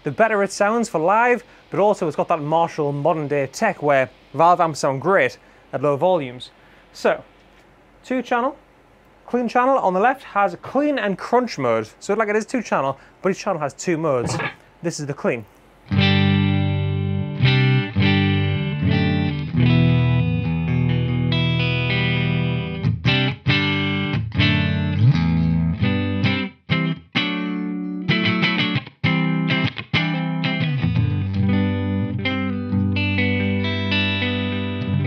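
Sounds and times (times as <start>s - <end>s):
clean electric guitar chords: 15.9s - 35.0s.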